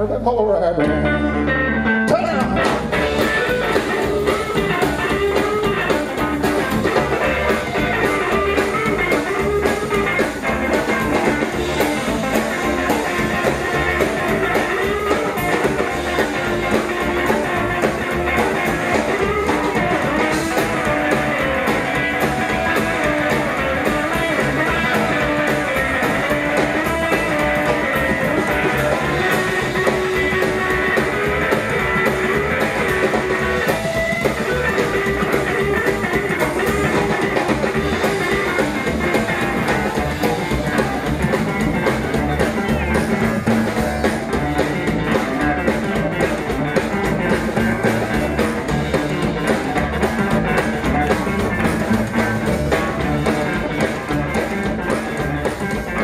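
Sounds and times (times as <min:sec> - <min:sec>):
rockabilly band playing: 0:00.0 - 0:56.0.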